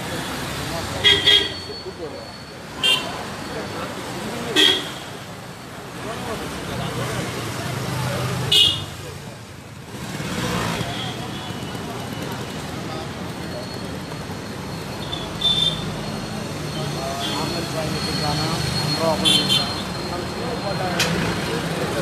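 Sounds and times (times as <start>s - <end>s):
crowd hubbub: 0.0s - 22.0s.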